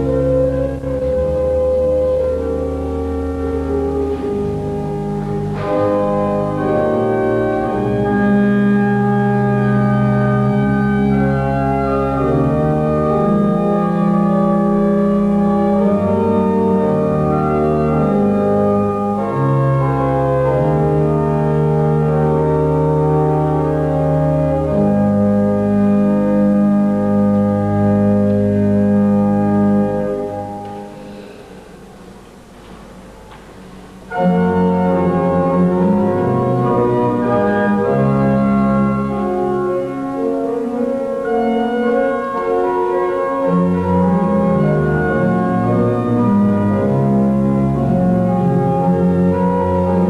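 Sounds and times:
pipe organ chords: 0.0s - 50.0s.

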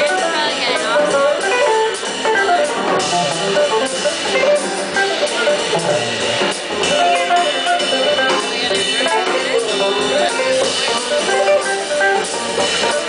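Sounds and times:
drum kit with cymbals: 0.0s - 13.0s
electric guitar single notes: 0.1s - 13.0s.

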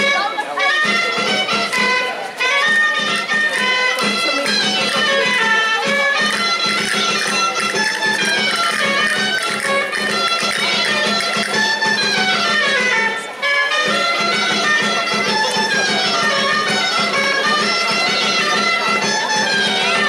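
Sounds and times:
folk dance music over drone: 0.0s - 20.0s.

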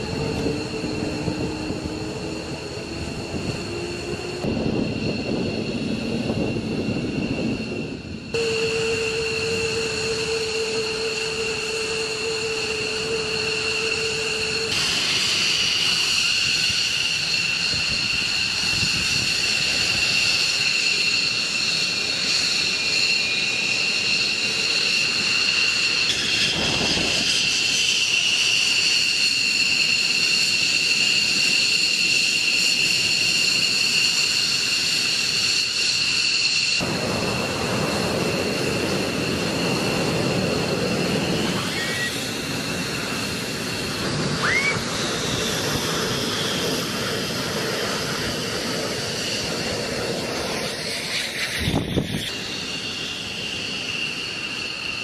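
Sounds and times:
jet engines idling: 0.0s - 55.0s.

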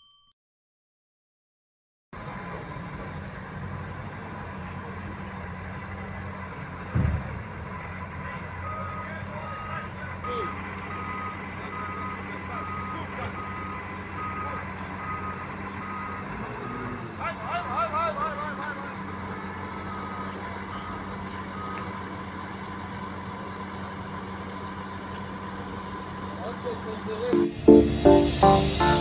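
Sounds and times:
diesel engine running: 2.2s - 29.0s
loud thump: 6.9s - 7.4s
reversing alarm beeping: 8.6s - 16.4s, 18.9s - 22.0s, 27.4s - 29.0s.

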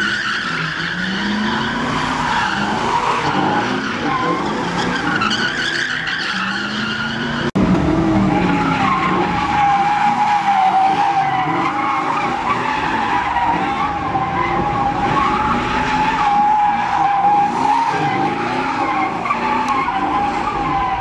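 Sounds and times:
car engine revving: 0.0s - 21.0s
car tyres squealing: 0.0s - 21.0s.

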